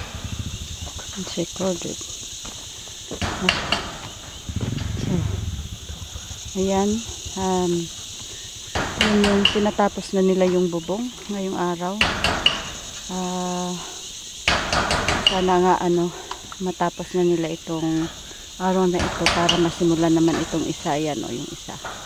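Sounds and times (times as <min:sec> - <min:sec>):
insects droning: 0:00.0 - 0:22.0
hammering knocks: 0:03.1 - 0:11.0, 0:12.0 - 0:12.9, 0:14.5 - 0:15.7, 0:19.0 - 0:20.6.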